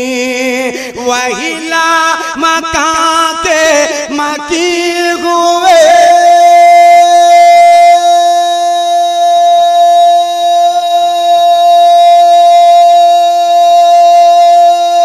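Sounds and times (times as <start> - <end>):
long steady drone note: 6.4 - 15.0.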